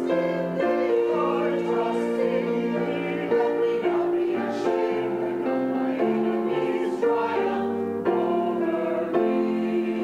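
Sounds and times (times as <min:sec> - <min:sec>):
mixed choir singing: 0:00.0 - 0:10.0.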